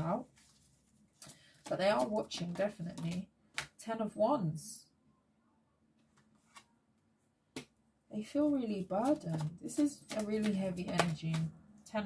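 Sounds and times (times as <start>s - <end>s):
cards tapping on table: 9.1s - 11.5s.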